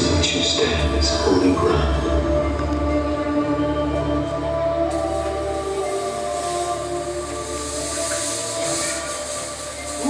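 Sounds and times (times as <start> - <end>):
soft music drone: 0.0 - 10.0
fog machine hissing: 4.9 - 10.0.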